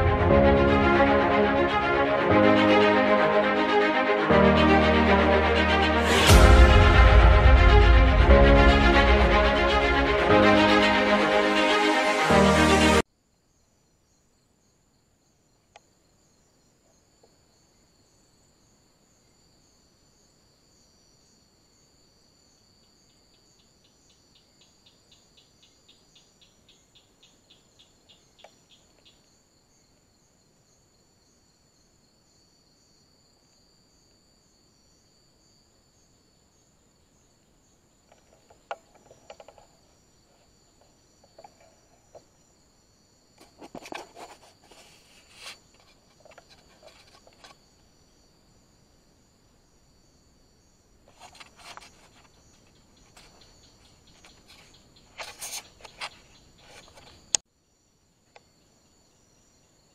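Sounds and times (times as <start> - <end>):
crickets chirring: 13.3 - 59.9
soft rustles and clicks: 43.4 - 47.6.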